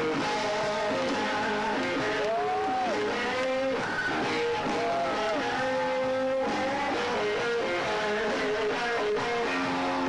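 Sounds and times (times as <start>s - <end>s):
band backing: 0.0s - 10.0s
blues electric guitar lead: 0.0s - 10.0s.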